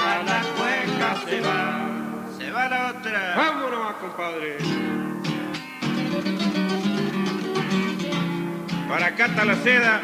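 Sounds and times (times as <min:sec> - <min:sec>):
acoustic guitars playing: 0:00.0 - 0:10.0
man speaking: 0:02.3 - 0:05.1.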